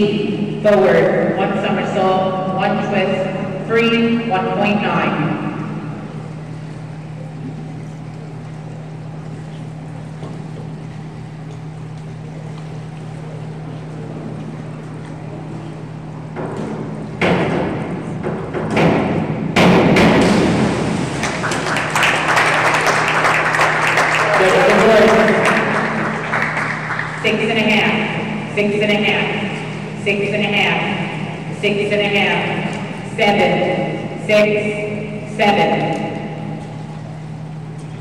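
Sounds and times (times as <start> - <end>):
steady low hum: 0.0 - 38.0
diving board thumping and rattling: 16.3 - 22.3
diver splashing into pool: 19.8 - 23.8
spectators clapping and cheering: 21.0 - 27.3.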